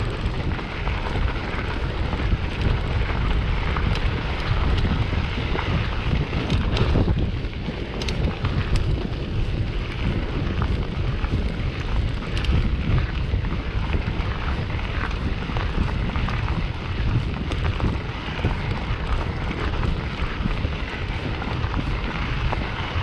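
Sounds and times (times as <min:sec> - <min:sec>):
sharp clicks and ticks: 0:00.0 - 0:23.0
tyres rolling on gravel: 0:00.0 - 0:23.0
wind buffeting microphone: 0:00.0 - 0:23.0.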